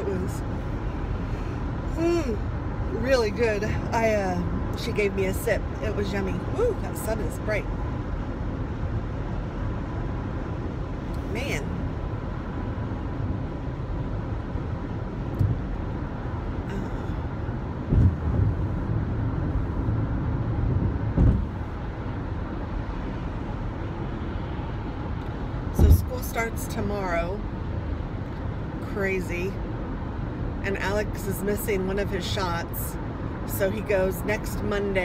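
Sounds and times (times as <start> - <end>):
car tyre and engine rumble: 0.0 - 35.0.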